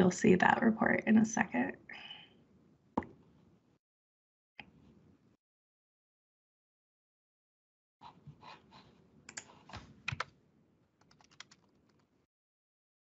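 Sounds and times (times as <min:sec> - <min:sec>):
typing on computer keyboard: 0:09.3 - 0:10.3, 0:11.0 - 0:12.1.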